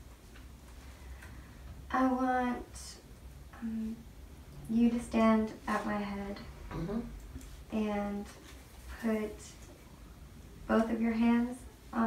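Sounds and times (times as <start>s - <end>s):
steady low hum: 0.0s - 12.0s
woman's voice: 1.9s - 3.0s, 3.6s - 4.0s, 4.7s - 6.5s, 7.7s - 9.6s, 10.7s - 12.0s.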